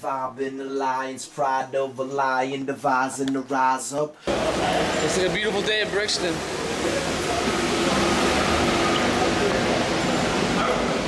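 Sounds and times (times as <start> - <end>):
traffic noise: 4.2 - 11.0
voices of passers-by: 4.3 - 11.0.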